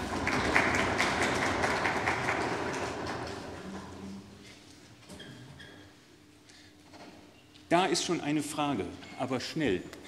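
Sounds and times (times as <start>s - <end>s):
audience applauding: 0.0s - 3.7s.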